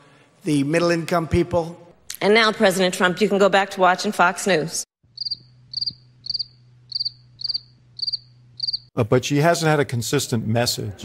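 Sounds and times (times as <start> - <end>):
crickets chirping: 5.0 - 8.9.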